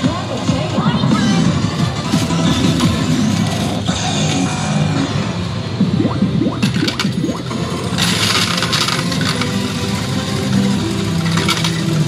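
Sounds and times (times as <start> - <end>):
electronic machine sounds: 1.1 - 12.0.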